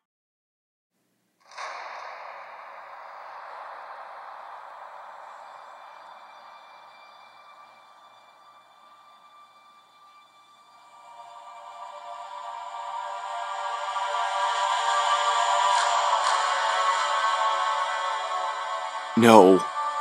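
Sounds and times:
music with sustained tones: 4.0s - 19.1s.

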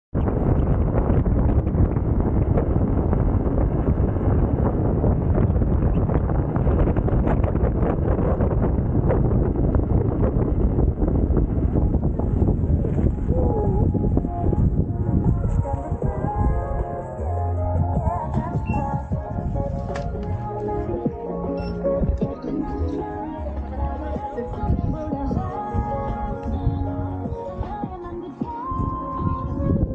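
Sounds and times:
wind buffeting microphone: 0.1s - 29.9s
faint music: 12.0s - 29.9s.

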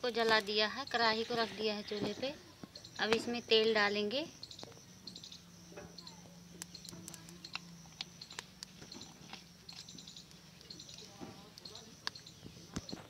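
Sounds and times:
sharp clicks: 4.4s - 13.0s.

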